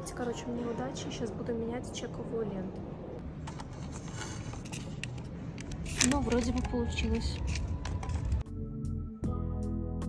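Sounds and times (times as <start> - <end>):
receipt paper rustling: 3.5 - 8.4.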